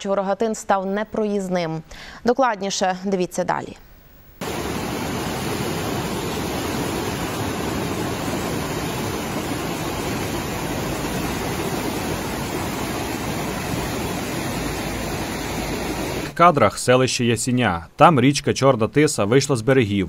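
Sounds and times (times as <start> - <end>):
river torrent roaring: 4.4 - 16.4.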